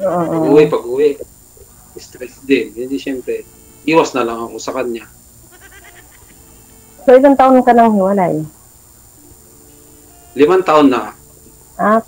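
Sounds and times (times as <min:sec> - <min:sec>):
faint wavering voice: 0:00.0 - 0:08.5, 0:09.2 - 0:12.0
low phone line hum: 0:00.0 - 0:12.0.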